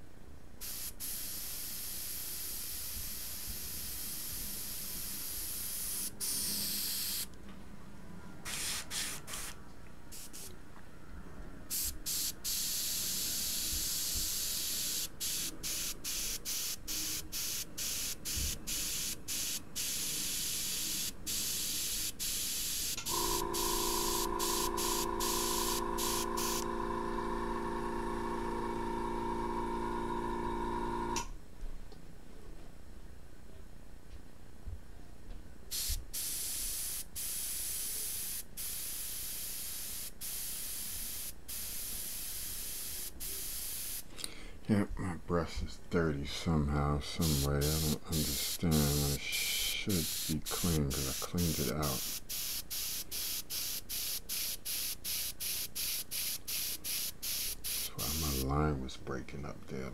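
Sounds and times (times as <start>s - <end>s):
airbrush spraying hiss: 0.6s - 7.3s, 8.5s - 10.5s, 11.7s - 26.6s, 35.7s - 44.1s, 47.0s - 58.5s
steady multi-pitched hum: 22.4s - 31.2s, 46.1s - 52.3s.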